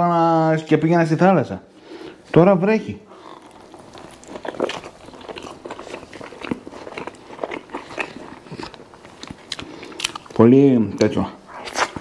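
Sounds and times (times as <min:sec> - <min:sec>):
biting and chewing sandwich: 0:03.1 - 0:10.5, 0:11.5 - 0:12.0.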